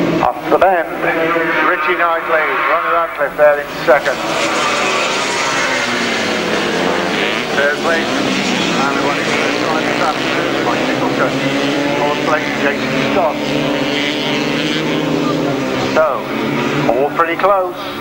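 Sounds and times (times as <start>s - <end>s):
racing motorcycle engines revving: 0.0s - 18.0s.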